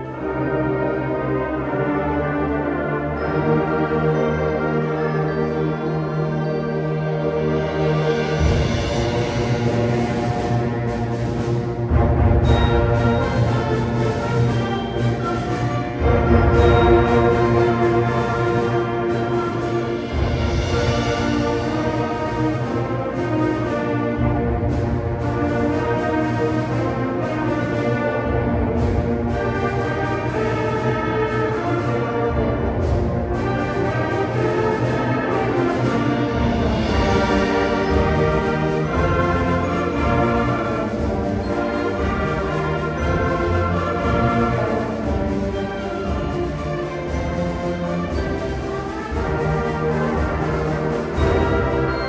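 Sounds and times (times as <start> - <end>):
concert band playing: 0.0 - 52.0.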